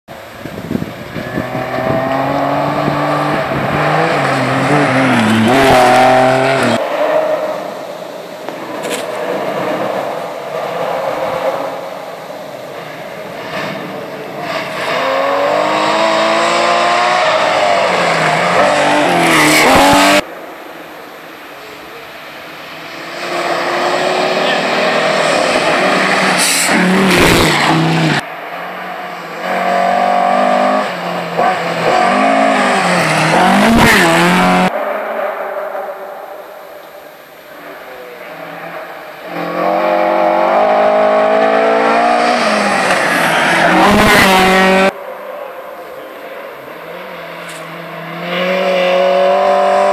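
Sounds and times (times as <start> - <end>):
rally car engines revving hard: 0.3 - 20.3, 22.7 - 35.9, 37.7 - 45.0, 46.5 - 49.9.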